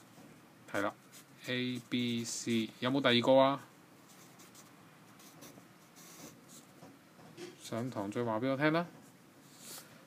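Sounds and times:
pencil scratching on paper: 4.1 - 6.7.

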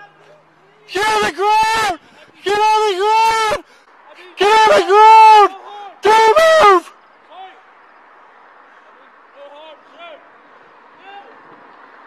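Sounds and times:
man shouting command: 0.0 - 7.6.

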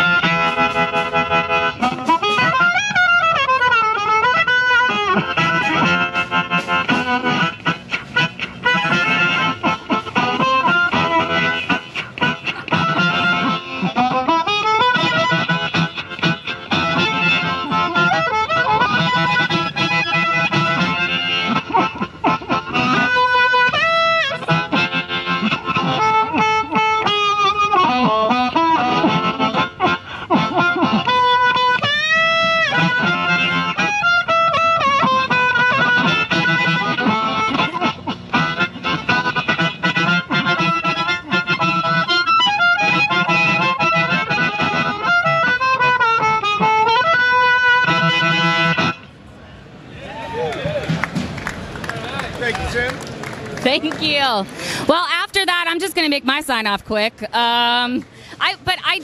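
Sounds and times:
amplified blues harmonica: 0.0 - 49.4.

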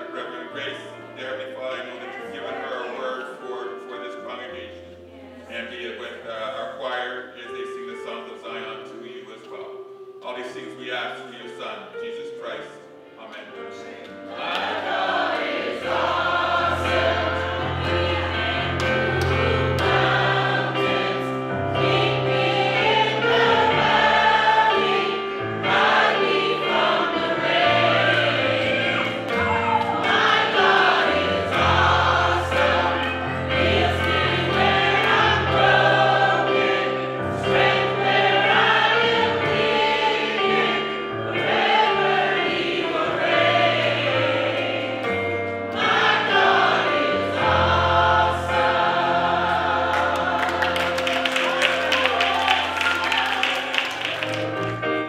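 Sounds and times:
gospel choir singing: 0.0 - 11.7, 13.3 - 55.0.

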